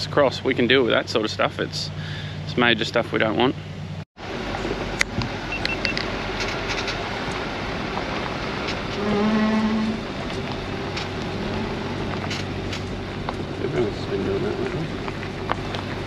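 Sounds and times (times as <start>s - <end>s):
engine rumbling: 0.0s - 16.0s
tyres on loose gravel: 5.6s - 16.0s.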